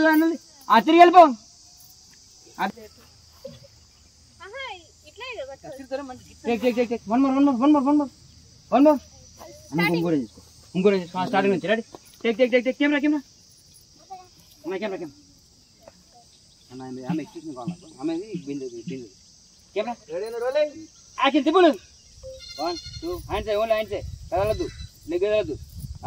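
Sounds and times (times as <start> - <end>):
high-pitched insect drone: 0.0 - 26.0.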